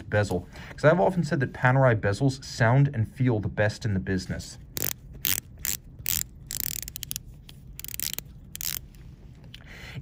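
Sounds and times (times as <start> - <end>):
watch bezel ratcheting clicks: 4.8 - 8.9.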